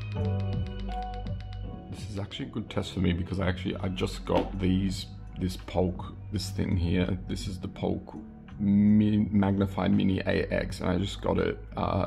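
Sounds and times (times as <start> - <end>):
lo-fi hip-hop beat from speaker: 0.0 - 6.1.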